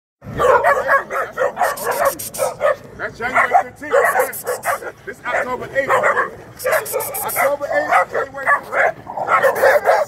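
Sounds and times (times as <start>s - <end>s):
puppies barking and yipping: 0.2s - 10.0s.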